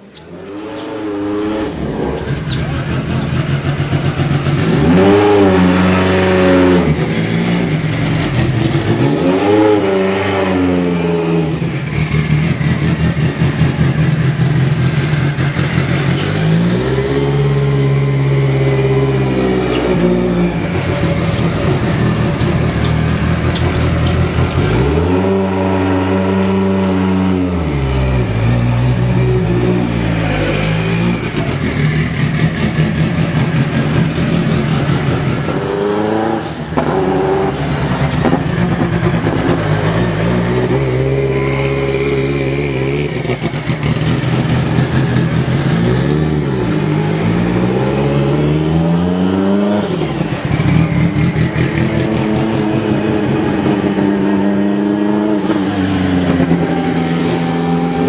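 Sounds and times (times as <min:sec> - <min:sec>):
rally car engine revving: 0:00.0 - 0:58.0.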